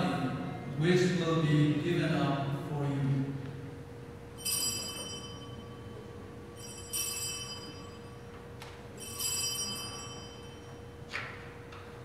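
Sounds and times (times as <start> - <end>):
faint steady hum: 0.0 - 12.0
altar bells jingling: 4.4 - 8.3, 9.0 - 11.0.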